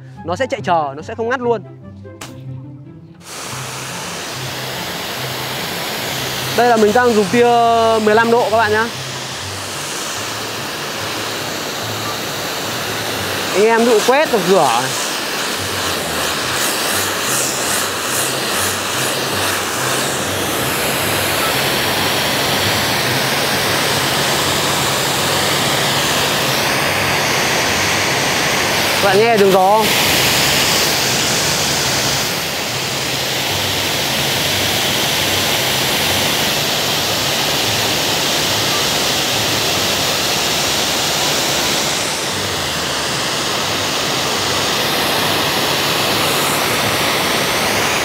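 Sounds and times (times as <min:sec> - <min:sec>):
low machine hum: 0:01.6 - 0:36.2
pressure washer jet hissing: 0:03.2 - 0:48.0.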